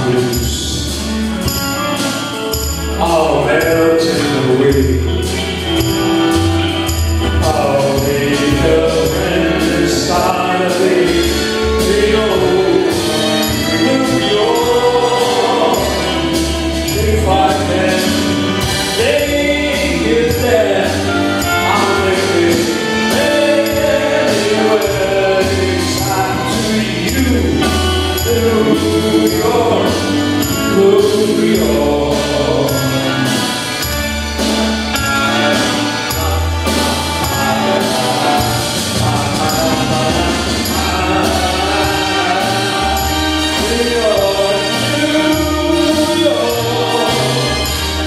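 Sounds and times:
keyboard: 0.0 - 48.0
person singing: 0.0 - 48.0
small band playing live: 0.0 - 48.0
steady bass line: 0.0 - 48.0
tambourine shaking: 0.0 - 48.0
sustained sung vocal: 7.4 - 33.5, 35.9 - 48.0.

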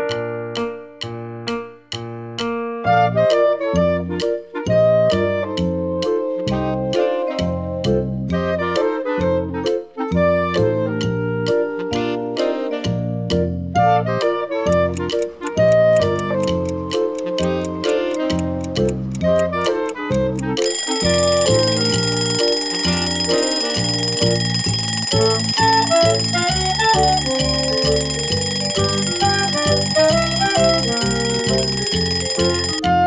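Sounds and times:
alarm clock ringing: 20.6 - 32.8.

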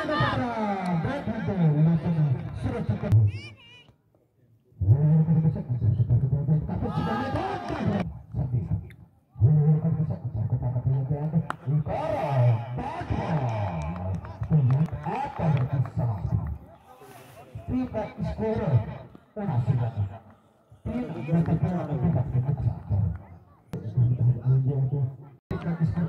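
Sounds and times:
man talking: 4.4 - 26.0.

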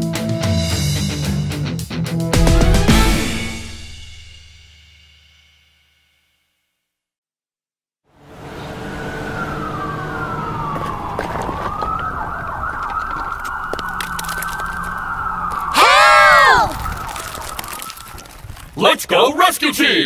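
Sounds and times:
cartoon sirens wailing: 8.4 - 18.4.

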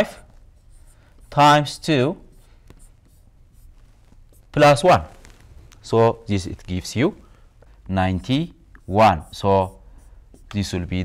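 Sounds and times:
pen scratching on paper: 0.0 - 5.4, 8.1 - 11.0.

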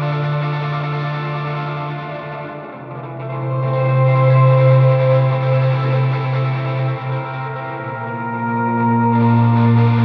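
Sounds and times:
electric guitar ringing chords: 0.0 - 10.0.

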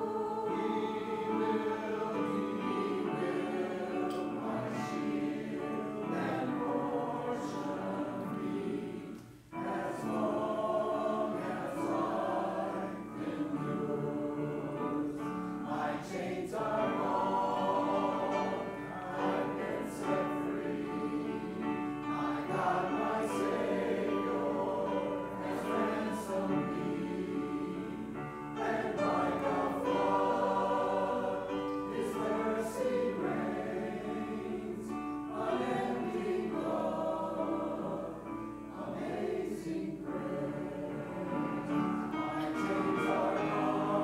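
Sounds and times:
choir singing in parts: 0.0 - 44.0
piano through a speaker: 0.0 - 44.0.

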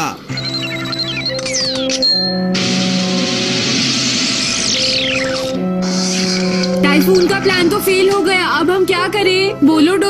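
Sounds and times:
background music: 0.0 - 10.0
falling whistle: 0.3 - 7.1.

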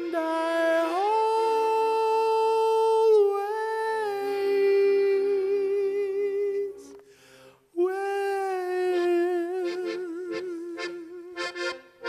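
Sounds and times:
soft accordion chords: 0.0 - 2.2, 3.6 - 7.6, 8.7 - 12.0.

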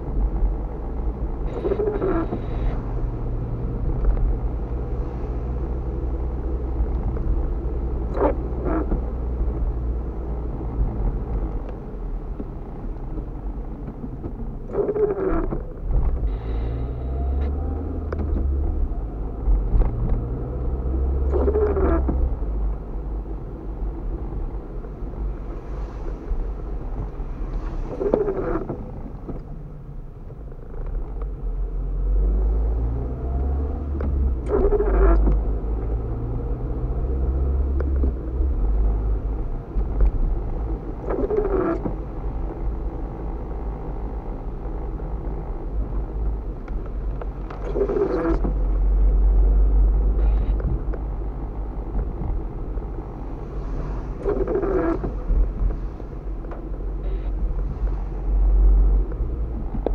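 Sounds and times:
windshield wipers sweeping: 0.0 - 29.6, 33.0 - 59.9
engine and tyre rumble: 0.0 - 59.9.

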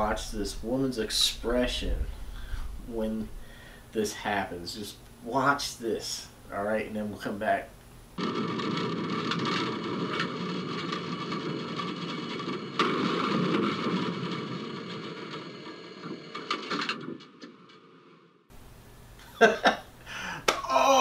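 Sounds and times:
cab rumbling and rattling: 8.2 - 17.8
tram running on rails: 8.4 - 17.3.

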